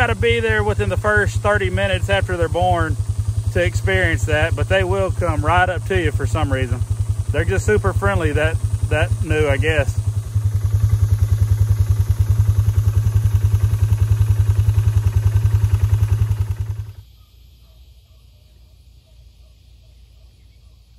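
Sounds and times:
atv engine idling: 0.0s - 18.2s
faint chirping: 16.9s - 20.9s.

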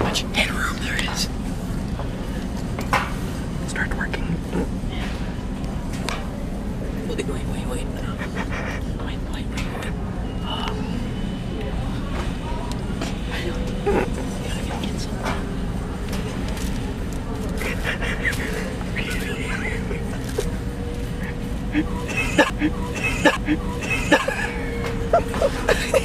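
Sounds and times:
store background hum: 0.0s - 26.0s
indistinct voices: 6.8s - 26.0s.

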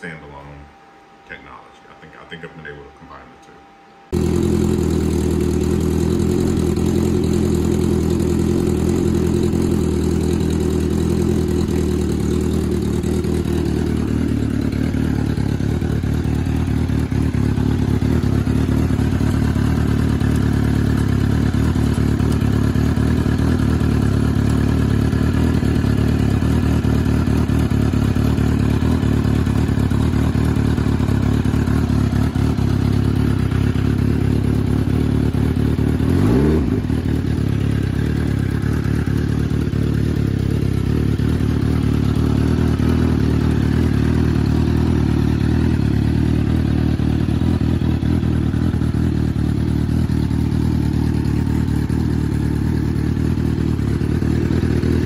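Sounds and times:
motorcycle engine idling: 4.1s - 55.0s.

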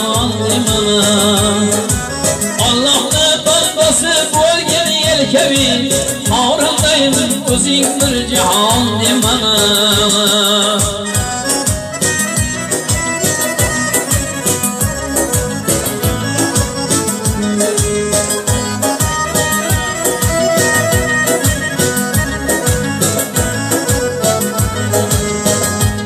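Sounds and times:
electronic keyboard melody: 0.0s - 26.0s
programmed drum beat: 0.0s - 26.0s.

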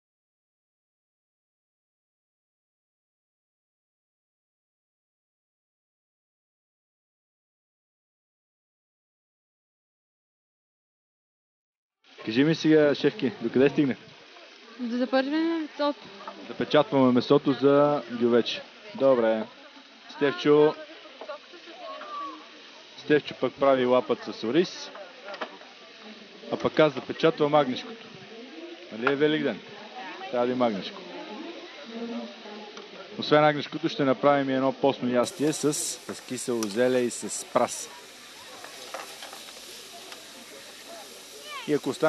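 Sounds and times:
meat sizzling in frying pans: 12.1s - 42.0s
faint voices: 12.2s - 42.0s.

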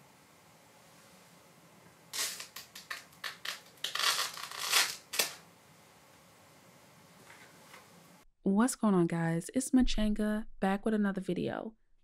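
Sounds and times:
plastic film crinkling: 2.2s - 5.4s.

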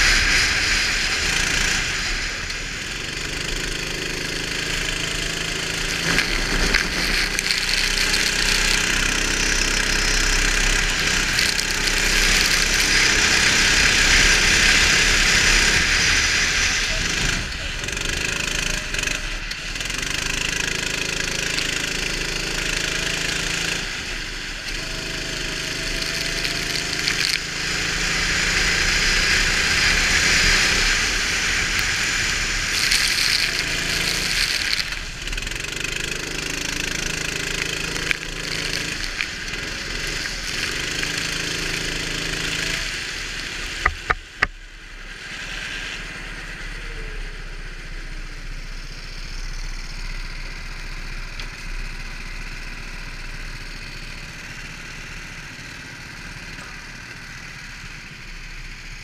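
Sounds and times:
go-kart engine running: 0.0s - 59.0s.

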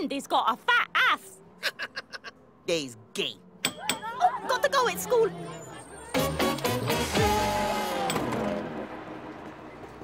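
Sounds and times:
bus engine pulling away: 4.2s - 10.0s.

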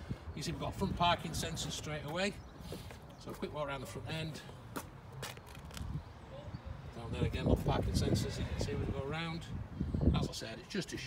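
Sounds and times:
footsteps on tarmac: 0.0s - 6.2s.

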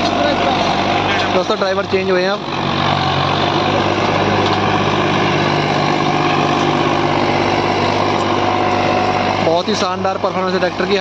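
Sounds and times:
tractor diesel engine under load: 0.0s - 11.0s.

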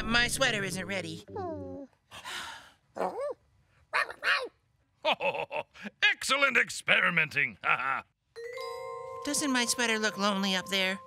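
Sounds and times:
breathy sigh: 2.1s - 2.8s.

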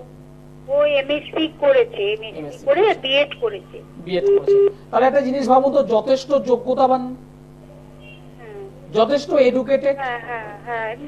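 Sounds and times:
short electronic beeps: 4.2s - 4.8s.

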